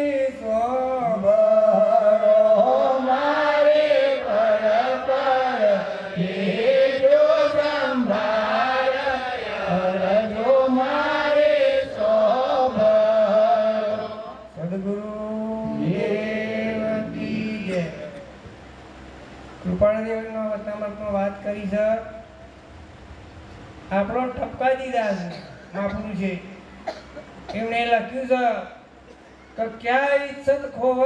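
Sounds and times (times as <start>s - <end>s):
man chanting into microphone: 0.0s - 18.3s, 29.6s - 31.0s.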